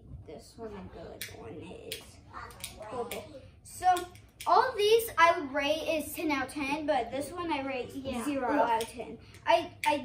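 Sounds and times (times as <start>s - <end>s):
child's voice: 0.3s - 10.0s.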